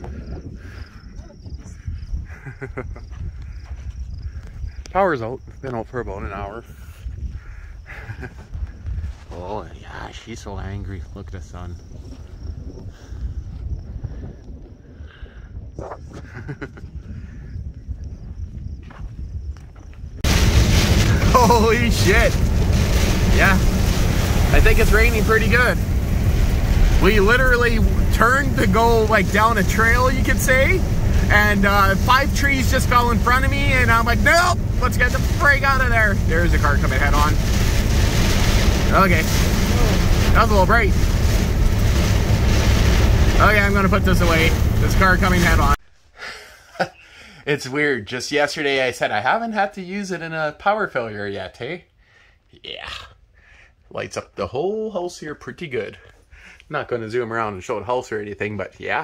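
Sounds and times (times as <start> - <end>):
wind buffeting microphone: 0.0 - 45.8
car engine and road noise: 20.3 - 45.8.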